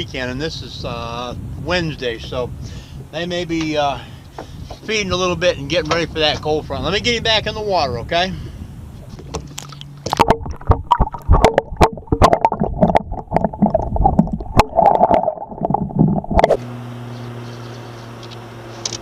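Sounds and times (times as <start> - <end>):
underwater sloshing and bubbling: 8.4 - 16.6.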